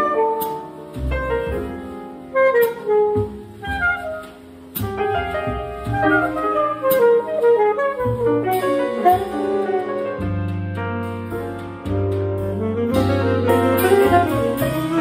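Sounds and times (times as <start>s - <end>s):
saxophone melody: 0.0s - 1.4s, 2.2s - 4.4s, 5.9s - 10.1s, 12.4s - 15.0s
piano chords: 0.0s - 15.0s
upright bass: 0.0s - 15.0s.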